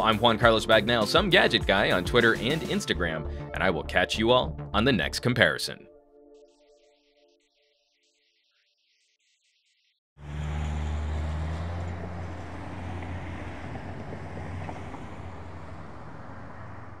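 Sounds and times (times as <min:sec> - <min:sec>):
passing cars engine hum: 0:10.2 - 0:17.0
road noise: 0:10.2 - 0:17.0.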